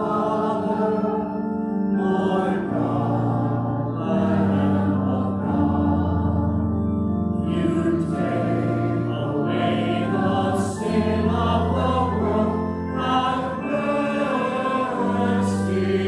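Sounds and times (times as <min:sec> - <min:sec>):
congregation singing a hymn: 0:00.0 - 0:16.0
organ bass notes: 0:00.0 - 0:16.0.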